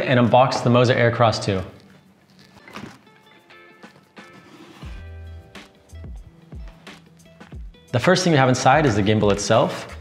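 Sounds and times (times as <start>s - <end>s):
soft instrumental music: 0.0s - 10.0s.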